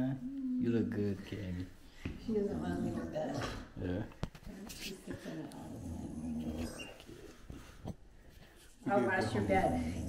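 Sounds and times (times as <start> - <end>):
dog growling: 5.4 - 7.2, 9.2 - 10.0.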